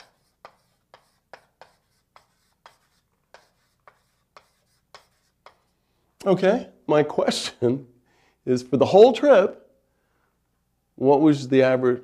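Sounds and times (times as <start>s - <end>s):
chalk writing on blackboard: 0.0s - 5.8s.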